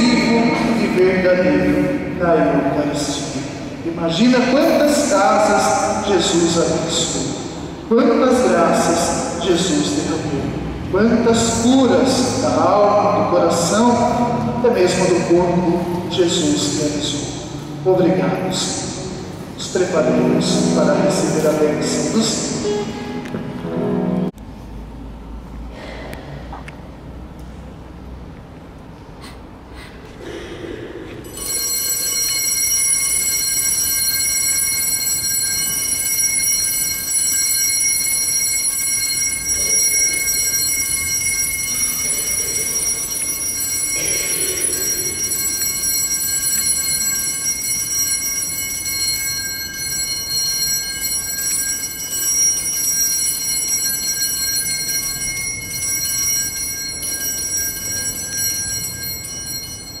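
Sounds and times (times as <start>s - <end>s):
altar bells ringing: 0.0s - 24.3s, 31.2s - 60.0s.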